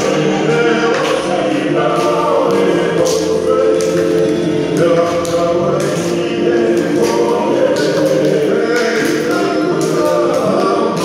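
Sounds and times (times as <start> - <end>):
group singing in harmony: 0.0 - 11.0.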